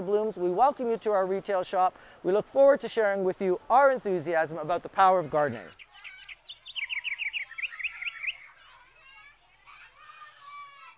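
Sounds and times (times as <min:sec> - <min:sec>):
small bird chirping: 0:05.6 - 0:08.6.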